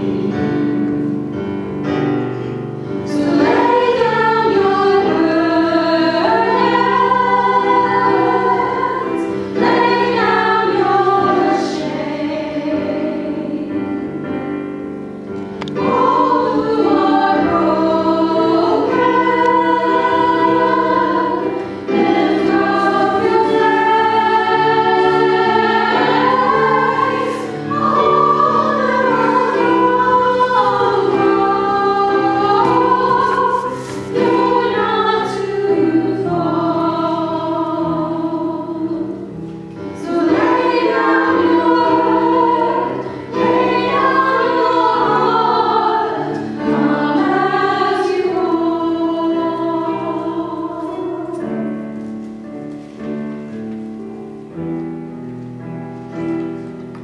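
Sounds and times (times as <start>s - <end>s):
voices singing a hymn: 0.0s - 53.8s
instrumental accompaniment: 0.0s - 57.0s.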